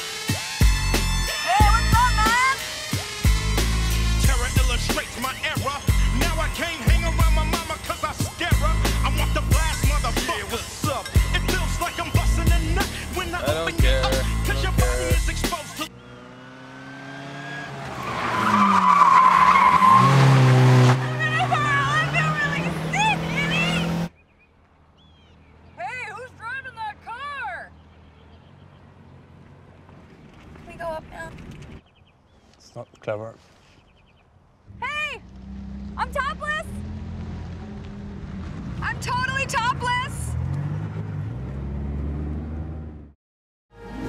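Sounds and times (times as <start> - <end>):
car engine revving: 0.4 - 24.1, 35.2 - 43.2
high-pitched vocal sound: 13.4 - 15.3
tyres squealing: 17.6 - 24.1.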